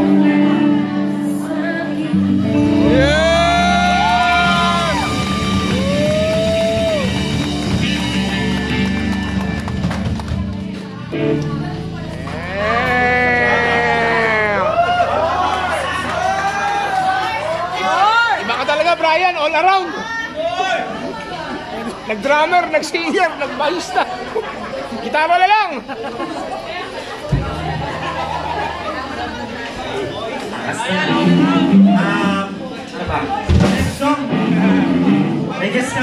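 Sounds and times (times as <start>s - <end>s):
people chattering: 0.0s - 36.0s
bass guitar note ringing: 27.3s - 32.5s.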